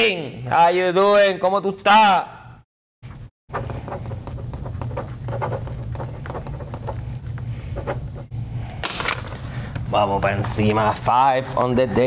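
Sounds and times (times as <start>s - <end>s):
steady low hum: 3.5s - 12.0s.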